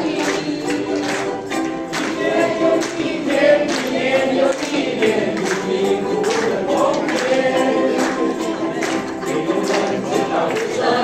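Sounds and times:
group singing in unison: 0.0s - 11.0s
ukuleles strumming: 0.0s - 11.0s.

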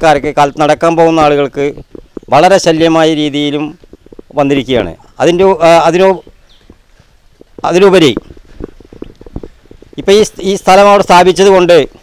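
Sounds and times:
man speaking: 0.0s - 6.2s, 7.6s - 8.2s, 10.0s - 12.0s
faint low thumps and clicks: 0.0s - 12.0s.

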